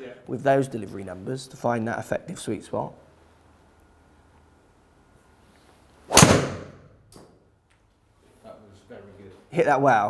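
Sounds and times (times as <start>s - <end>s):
golf club striking ball: 6.1s - 6.9s.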